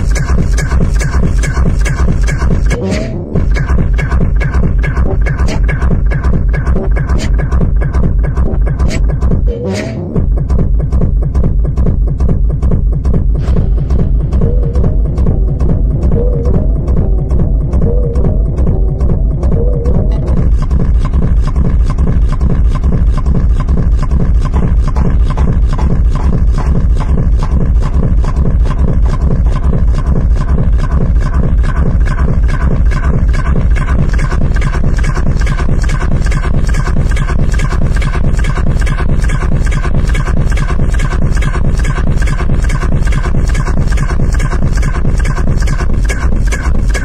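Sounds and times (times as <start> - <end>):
driving kick drum beat: 0.0 - 47.0
electronic synth sounds: 0.0 - 47.0.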